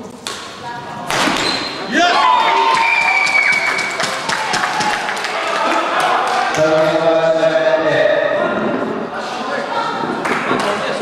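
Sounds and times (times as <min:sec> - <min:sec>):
spectators shouting and cheering: 0:01.8 - 0:11.0.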